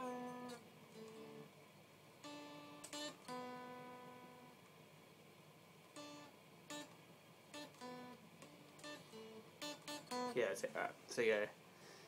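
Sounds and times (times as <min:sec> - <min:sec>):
electric guitar picking single notes: 0:00.0 - 0:01.6, 0:02.2 - 0:04.7, 0:05.9 - 0:10.8.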